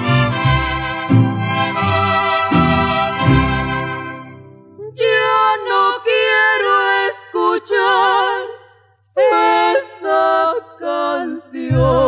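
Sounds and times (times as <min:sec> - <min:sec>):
women singing in harmony: 0:04.8 - 0:12.0.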